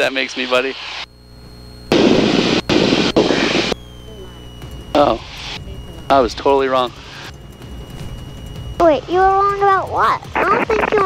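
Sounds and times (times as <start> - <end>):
aircraft engine low hum: 0.0 - 11.0.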